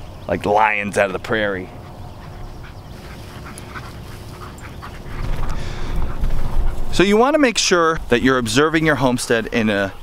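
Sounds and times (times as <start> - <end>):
rustling grass: 0.7 - 9.9
low rumble: 1.7 - 8.5.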